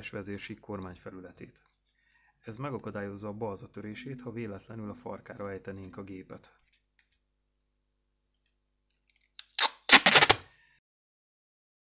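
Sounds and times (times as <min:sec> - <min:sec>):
adhesive tape ripping off roll: 0:09.4 - 0:10.5.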